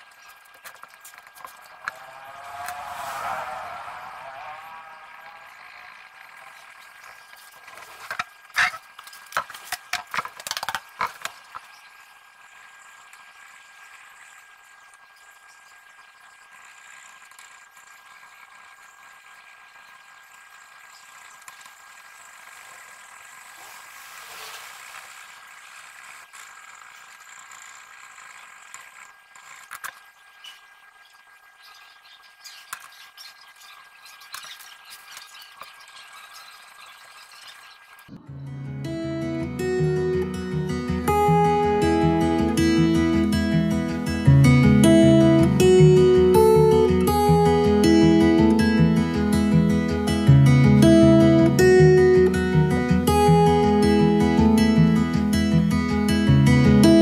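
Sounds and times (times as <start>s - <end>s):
wavering pitched sound: 1.6s - 7.5s, 38.1s - 57.0s
thin high tone: 1.6s - 7.6s, 38.1s - 57.0s.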